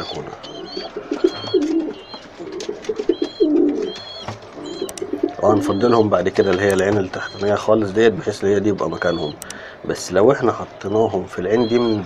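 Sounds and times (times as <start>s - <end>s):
high chirps: 0.0s - 12.0s
young pigeons cooing: 0.0s - 12.0s.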